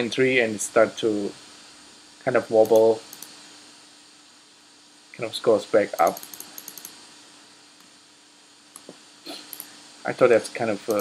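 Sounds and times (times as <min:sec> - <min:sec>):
faint steady hum: 0:00.0 - 0:11.0
computer clicks: 0:02.6 - 0:03.4, 0:06.0 - 0:07.0, 0:08.8 - 0:09.7.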